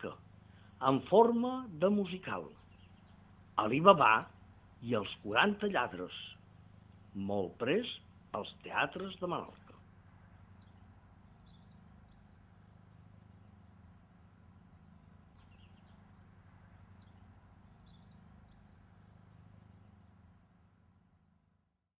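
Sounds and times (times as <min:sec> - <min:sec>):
high chirping calls: 0:00.0 - 0:21.0
steady low hum: 0:00.0 - 0:21.8.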